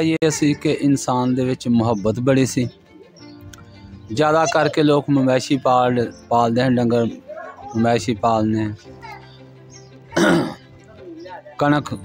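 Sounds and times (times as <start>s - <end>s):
background music tone: 0.0s - 12.0s
man clearing his throat: 10.2s - 10.6s.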